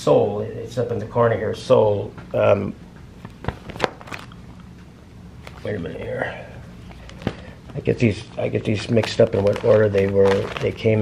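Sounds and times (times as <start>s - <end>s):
steady low hum: 0.0s - 11.0s
plastic sheet protectors crackling: 6.8s - 11.0s.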